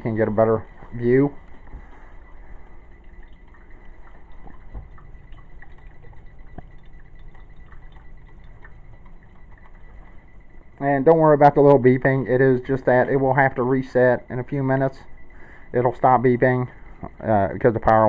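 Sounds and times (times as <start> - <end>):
coffee maker water gurgling: 0.0 - 18.0
faint steady high tone: 0.0 - 18.0
small water drips: 0.3 - 18.0.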